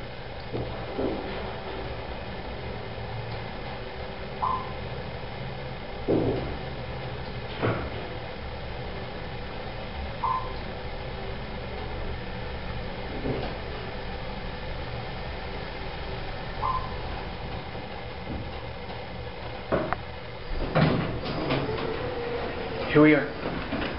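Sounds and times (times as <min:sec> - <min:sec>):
elevator humming: 0:00.0 - 0:23.9
elevator doors sliding open: 0:00.5 - 0:04.8, 0:15.3 - 0:23.9
short electronic beep: 0:04.4 - 0:04.8, 0:10.2 - 0:10.6, 0:16.6 - 0:17.0
elevator stopping with knocks: 0:16.6 - 0:19.1, 0:19.7 - 0:23.9.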